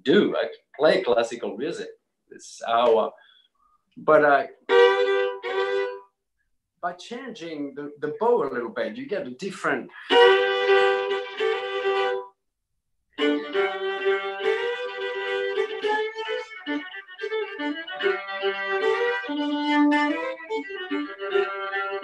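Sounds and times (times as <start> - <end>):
solo violin folk tune: 4.2 - 6.2, 9.8 - 12.4, 13.1 - 22.0.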